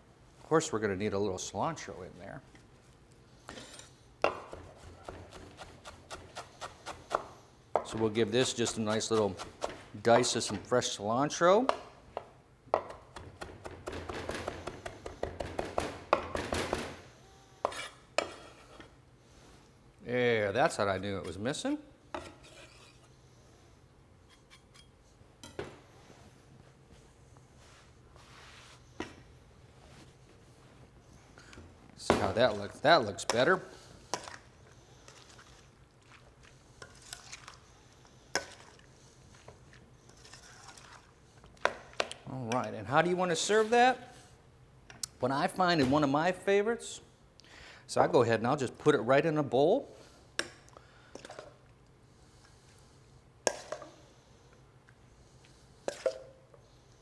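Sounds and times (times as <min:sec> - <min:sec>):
spoon stirring wet food: 0:32.5 - 0:42.8.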